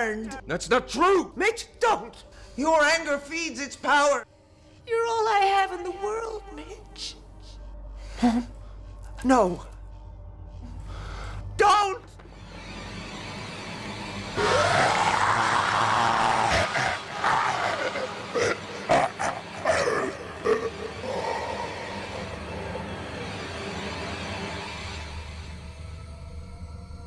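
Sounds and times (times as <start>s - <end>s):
woman's strangled guttural roar: 14.4s - 22.4s.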